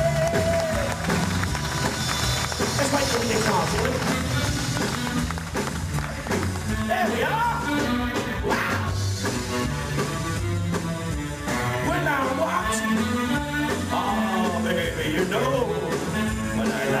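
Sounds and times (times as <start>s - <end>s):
pop-rock band playing: 0.0s - 17.0s.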